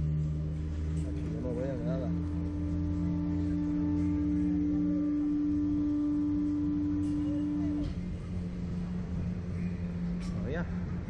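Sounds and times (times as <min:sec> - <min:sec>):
ride machinery humming: 0:00.0 - 0:11.0.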